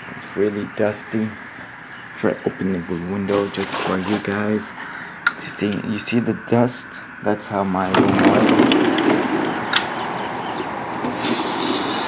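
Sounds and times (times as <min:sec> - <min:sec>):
vehicles and work machinery: 0:00.0 - 0:12.0
sharp click: 0:09.7 - 0:10.0.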